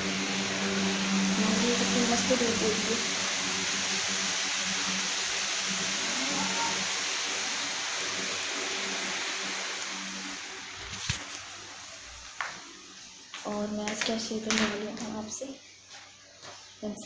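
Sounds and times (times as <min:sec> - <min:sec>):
steady rushing noise: 0:00.0 - 0:11.7.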